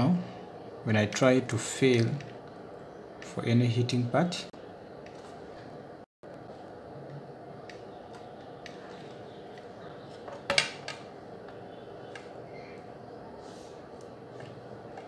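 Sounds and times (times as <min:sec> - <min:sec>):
steady background noise: 0:00.0 - 0:15.0.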